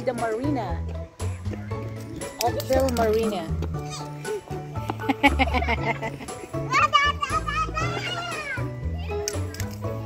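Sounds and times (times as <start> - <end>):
background music with bass line: 0.0 - 10.0
child squealing: 6.7 - 8.6.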